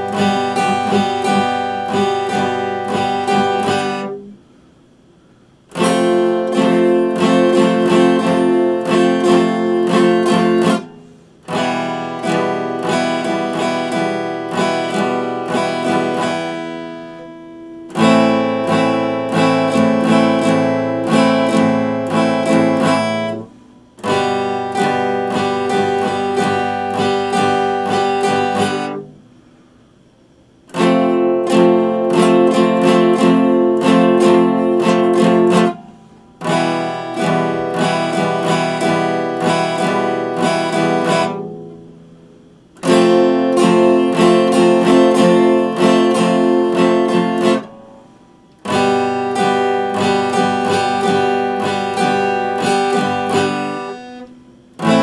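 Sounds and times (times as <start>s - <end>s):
acoustic guitar strummed chords: 0.0s - 55.0s.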